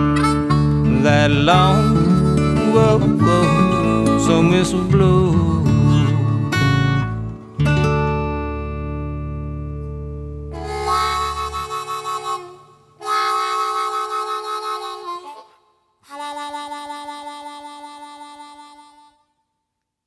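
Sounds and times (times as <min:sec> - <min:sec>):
harmonica chords: 0:00.0 - 0:07.8, 0:10.5 - 0:19.5.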